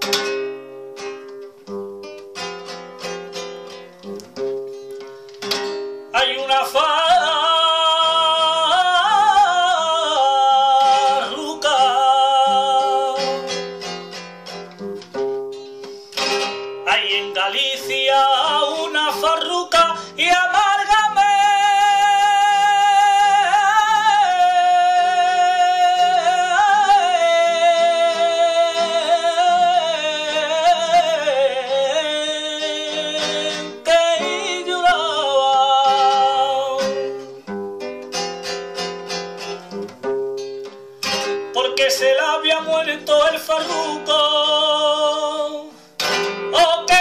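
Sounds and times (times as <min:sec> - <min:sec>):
guitar strumming: 0:00.0 - 0:47.0
man singing: 0:06.1 - 0:13.8, 0:16.8 - 0:37.2, 0:41.5 - 0:47.0.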